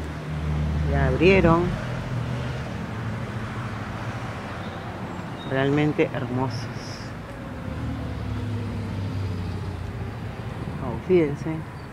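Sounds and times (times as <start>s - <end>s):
vehicle engine humming: 0.0s - 11.9s.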